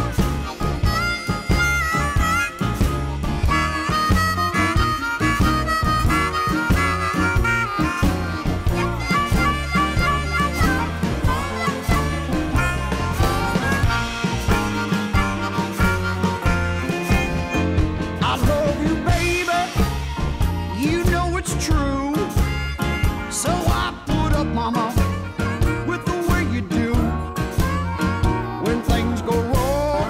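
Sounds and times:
blues band playing: 0:00.0 - 0:30.0
harmonica bending notes: 0:00.0 - 0:30.0.

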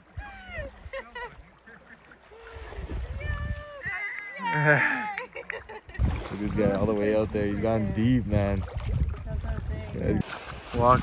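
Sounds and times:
water splashing: 0:00.0 - 0:11.0.

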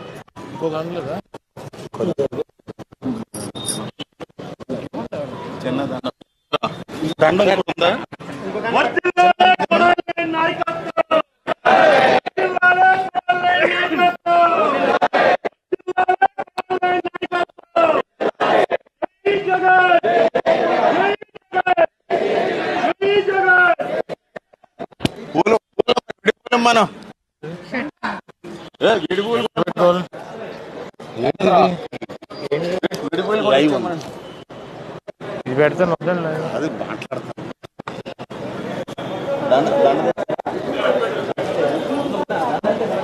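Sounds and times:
people talking over one another: 0:00.0 - 0:43.0.

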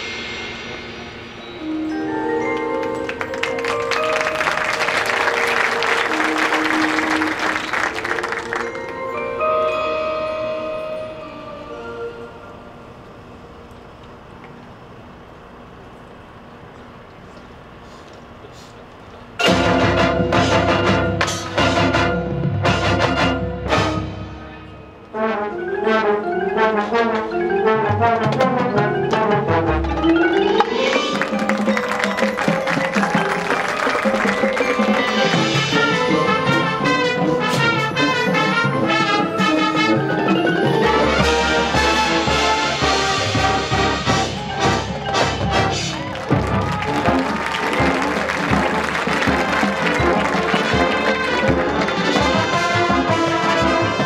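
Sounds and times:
marching band playing: 0:00.0 - 0:12.7, 0:19.4 - 0:54.0
mallet percussion chords: 0:00.0 - 0:13.1, 0:19.4 - 0:54.0
crowd applause: 0:02.3 - 0:09.4, 0:29.8 - 0:38.7, 0:40.8 - 0:54.0.

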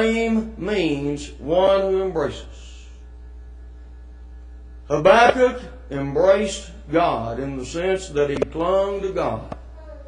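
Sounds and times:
man speaking: 0:00.0 - 0:03.0, 0:04.9 - 0:09.6
low electrical mains hum: 0:00.0 - 0:10.0.

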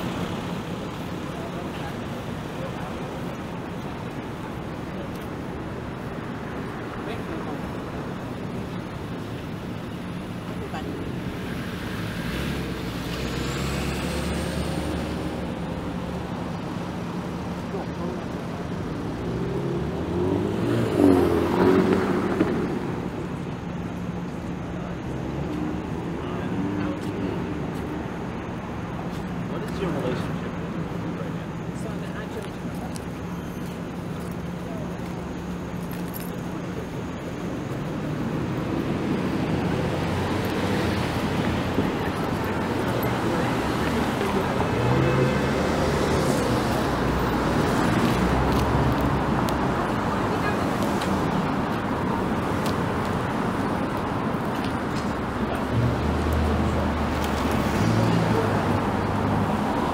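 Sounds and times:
street traffic rumble: 0:00.0 - 0:59.9.

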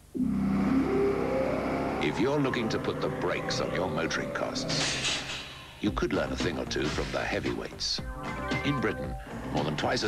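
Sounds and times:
vehicle engine accelerating: 0:00.3 - 0:05.8.

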